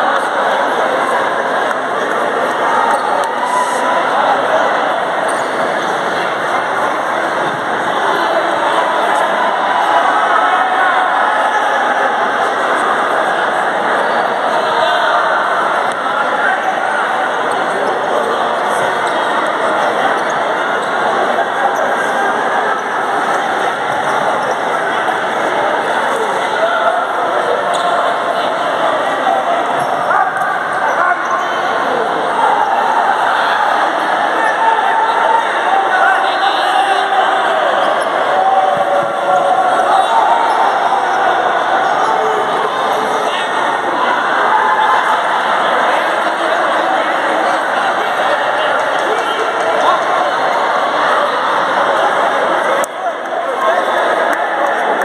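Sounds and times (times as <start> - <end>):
din of indistinct voices: 0.0 - 55.0.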